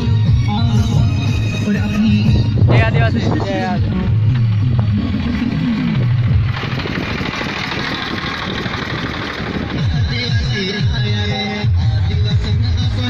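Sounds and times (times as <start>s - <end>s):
music: 0.0s - 6.4s, 9.6s - 13.0s
tractor engine running: 0.0s - 13.0s
steady rushing noise: 2.3s - 10.4s.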